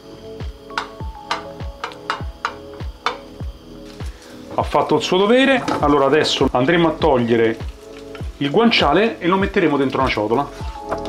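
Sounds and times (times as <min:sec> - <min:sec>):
deep kick drum: 0:00.4 - 0:03.6
light ticking: 0:00.7 - 0:03.3.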